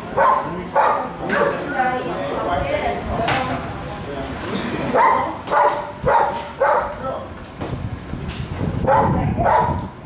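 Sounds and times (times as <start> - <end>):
dog barking: 0.2 - 1.6, 4.9 - 7.0, 8.8 - 9.8.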